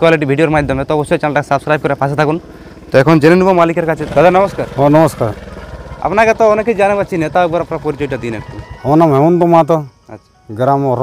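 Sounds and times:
low steady rumble: 0:00.6 - 0:08.6
man speaking: 0:06.0 - 0:11.0.

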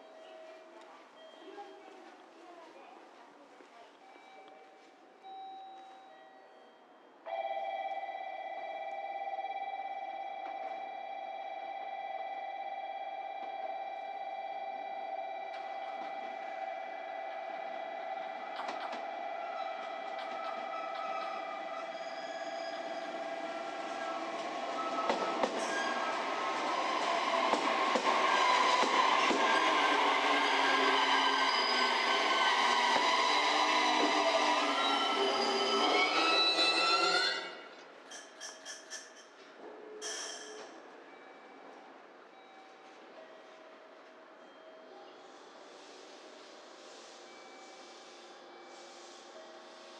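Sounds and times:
steady high-pitched tones: 0:08.7 - 0:37.7
electric train running noise: 0:12.9 - 0:37.6, 0:44.4 - 0:49.9.

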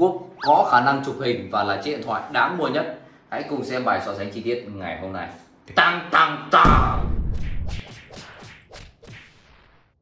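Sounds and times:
whip-like swishes: 0:07.2 - 0:09.5.

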